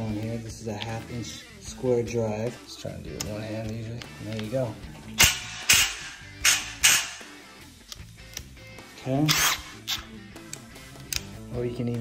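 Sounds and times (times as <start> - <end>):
impact driver on a bolt: 5.2 - 7.2, 9.2 - 10.1.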